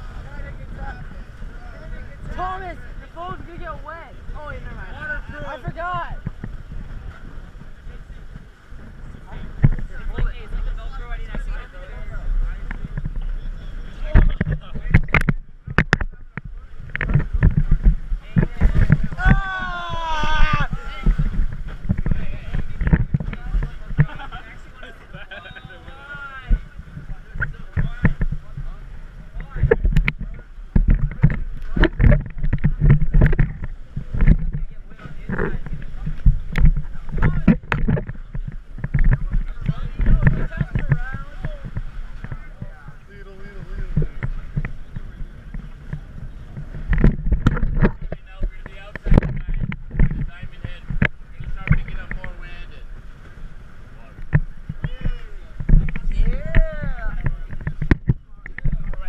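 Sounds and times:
low rumble: 0.0s - 25.0s
water splashing past hulls: 0.0s - 59.0s.

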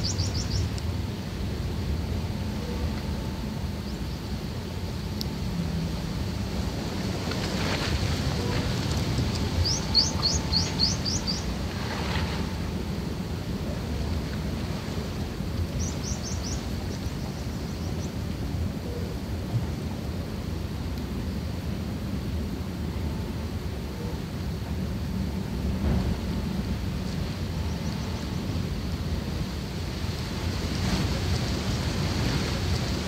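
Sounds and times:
low rumbling noise: 0.0s - 33.0s.

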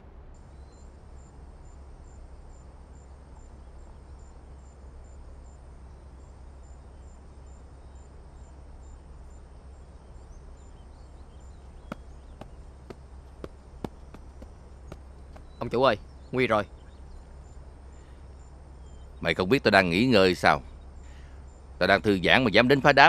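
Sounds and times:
faint outdoor hiss: 0.0s - 23.0s
steady low hum: 0.0s - 23.0s
cricket chirping: 0.4s - 23.0s.

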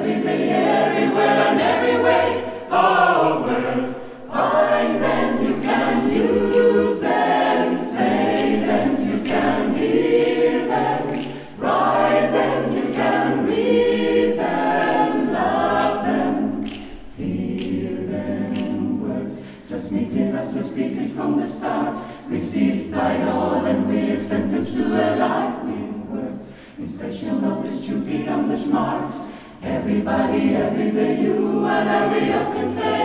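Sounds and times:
choir singing a cappella: 0.0s - 33.0s.

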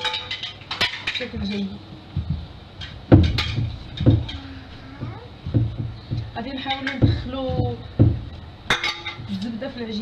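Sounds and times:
dough thumping against bowl: 2.1s - 9.8s.

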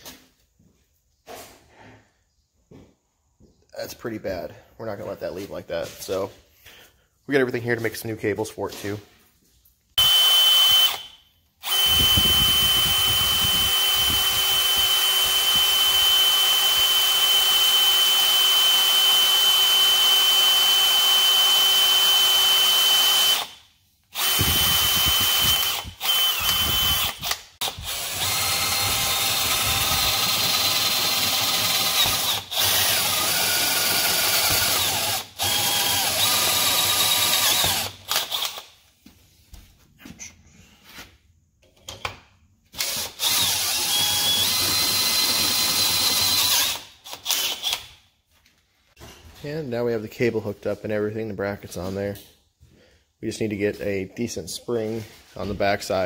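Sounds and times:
cordless drill boring through metal: 10.0s - 38.7s, 42.8s - 48.0s.

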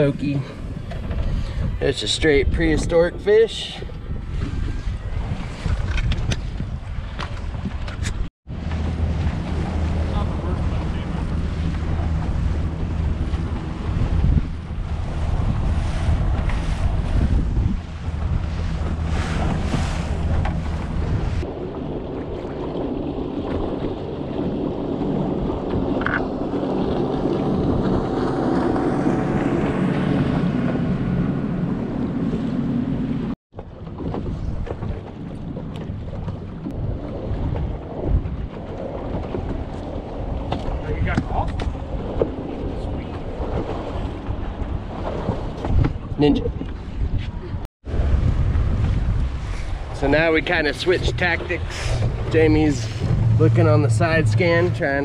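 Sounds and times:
choppy water: 0.0s - 55.0s
wind buffeting microphone: 0.0s - 55.0s
boat motor running: 3.9s - 55.0s.

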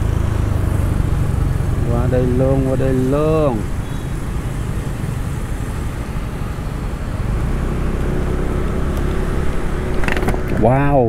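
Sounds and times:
engine tyre and wind rumble: 0.0s - 11.0s
faint vehicle hum: 0.0s - 11.0s.

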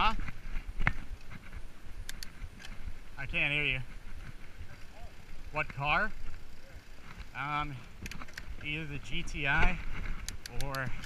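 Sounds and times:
bike rolling on sandy trail: 0.0s - 11.0s
bike rattling clicks: 0.3s - 2.8s, 4.2s - 11.0s.

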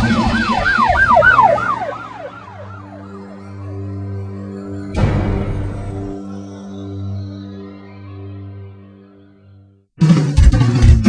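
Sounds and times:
siren yelping: 0.0s - 4.5s
low steady drone: 0.0s - 8.9s
loud music: 0.0s - 9.0s, 10.0s - 11.0s.

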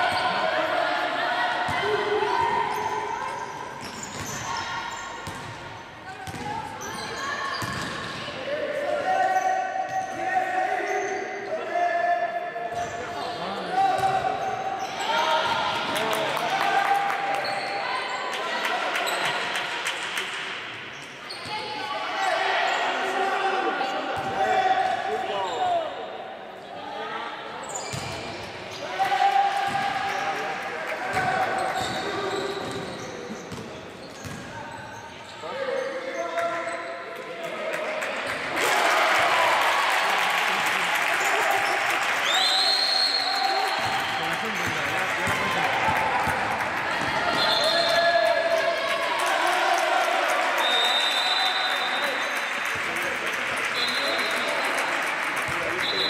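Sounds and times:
people shouting in a hall: 0.0s - 3.4s, 8.2s - 12.6s, 13.4s - 19.2s, 21.5s - 27.6s, 28.8s - 30.2s, 37.5s - 44.1s, 45.2s - 52.2s.

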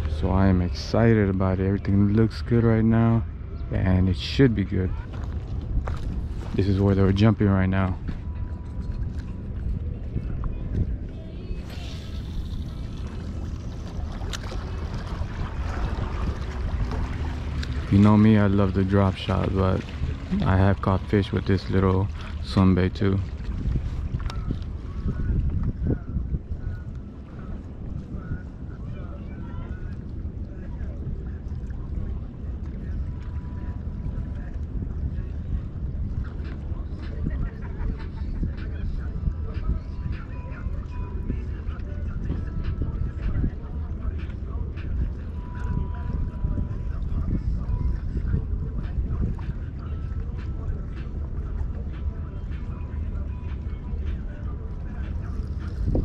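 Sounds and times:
wind rumbling on microphone: 0.0s - 56.0s.

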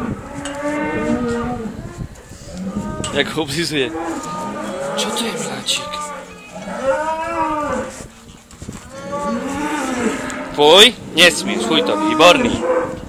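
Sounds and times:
cattle mooing: 0.0s - 8.0s, 8.9s - 13.0s.

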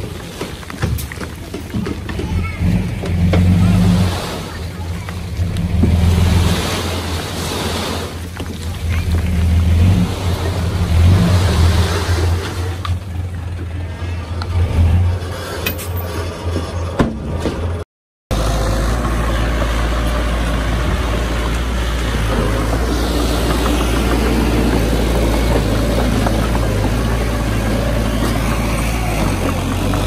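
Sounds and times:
truck engine revving: 2.3s - 30.0s.

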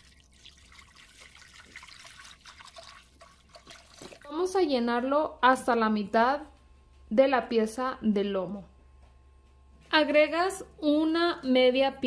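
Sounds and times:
water trickling into a pot: 0.0s - 4.3s.

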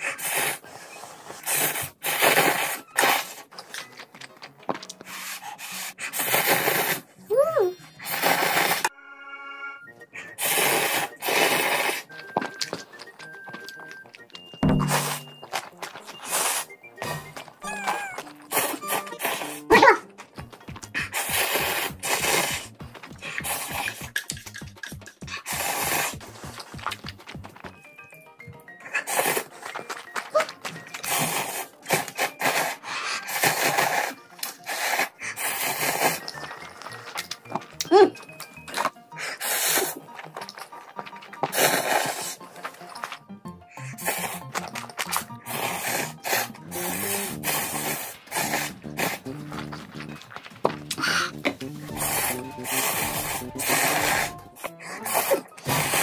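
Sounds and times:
slurping and chewing noodles: 0.0s - 8.9s, 10.0s - 56.0s
background music: 0.0s - 56.0s.

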